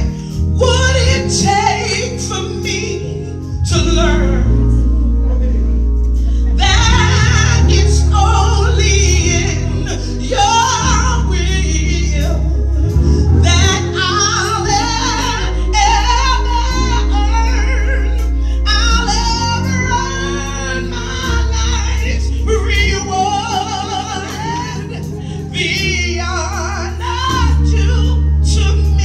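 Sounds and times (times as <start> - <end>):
woman singing gospel: 0.0 - 29.0.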